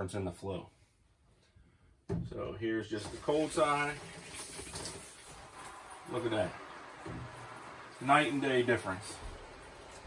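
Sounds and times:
water spraying from shower head: 3.1 - 10.0.

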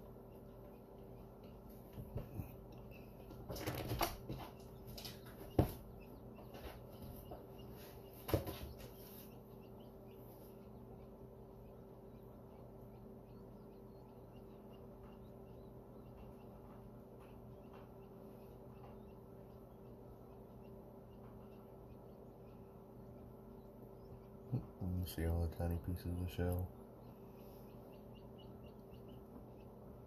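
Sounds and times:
incubator fan hum: 0.0 - 30.0
quail chicks peeping: 0.0 - 30.0
sharp knocks and scuffling taps: 0.9 - 9.3, 16.1 - 19.4.

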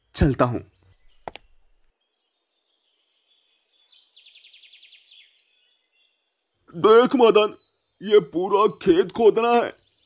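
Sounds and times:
bird chirping trill: 0.0 - 10.0.

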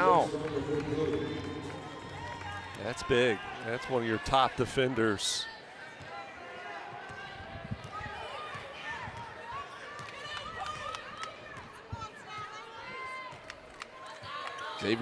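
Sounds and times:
faint voices and crowd: 0.0 - 15.0.

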